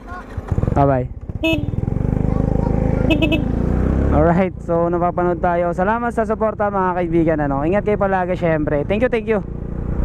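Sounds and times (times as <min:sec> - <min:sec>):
motor scooter accelerating: 0:00.0 - 0:10.0
scooter horn toot: 0:01.4 - 0:01.9, 0:03.0 - 0:03.6.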